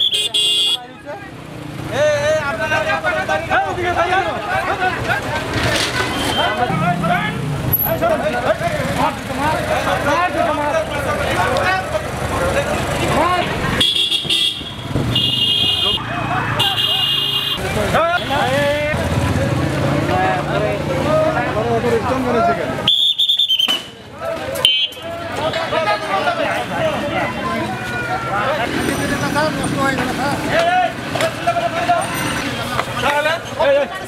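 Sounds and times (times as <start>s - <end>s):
vehicle horn blasts: 0.0s - 0.8s, 13.8s - 16.0s, 16.6s - 17.6s, 24.7s - 25.0s
street noise: 0.0s - 34.0s
voices calling out: 0.0s - 34.0s.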